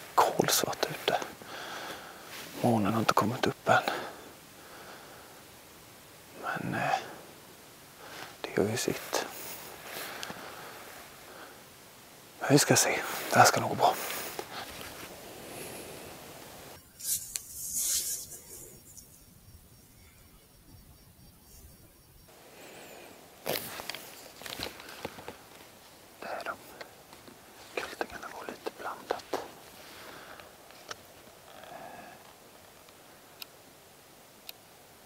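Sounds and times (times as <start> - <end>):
faint whispering: 0.0 - 5.0, 6.3 - 7.3, 8.0 - 11.6, 12.4 - 16.4, 26.2 - 30.5, 31.5 - 32.3
rustling: 0.0 - 5.1, 8.0 - 11.8, 12.6 - 19.4, 22.4 - 33.0.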